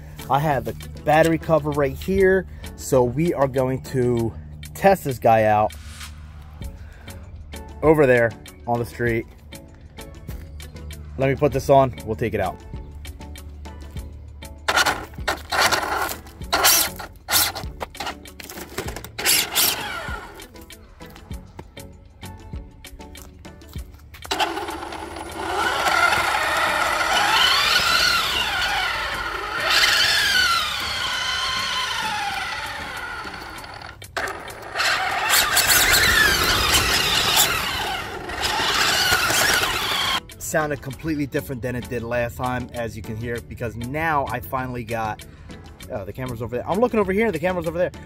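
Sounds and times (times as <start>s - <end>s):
toy car motor whining: 14.7s - 20.5s, 24.2s - 40.2s.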